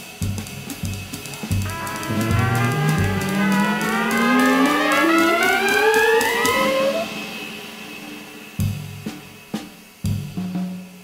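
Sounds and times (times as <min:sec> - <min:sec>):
brass section playing jazz: 0:01.6 - 0:07.1.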